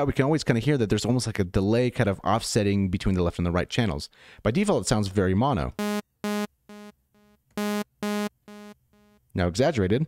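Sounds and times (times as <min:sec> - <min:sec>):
synth notes with delay echoes: 0:05.8 - 0:09.2.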